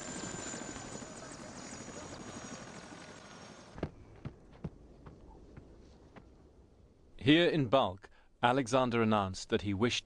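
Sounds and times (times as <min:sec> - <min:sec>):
helicopter rotor beating: 0:00.0 - 0:03.8.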